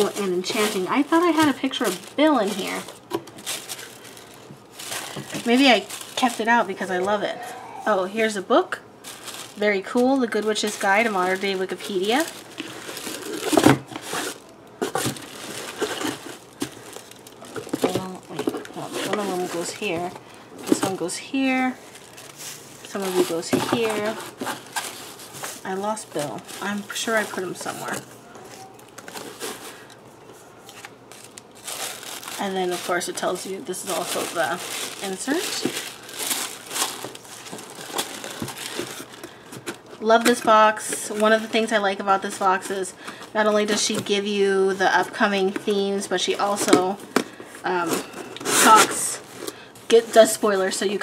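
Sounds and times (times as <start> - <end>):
packaging rustling and crinkling: 0.0 - 7.3, 8.2 - 51.0.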